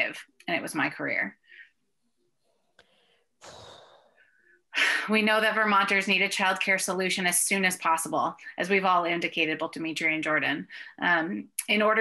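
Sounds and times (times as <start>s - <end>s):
person breathing in: 2.5s - 4.6s.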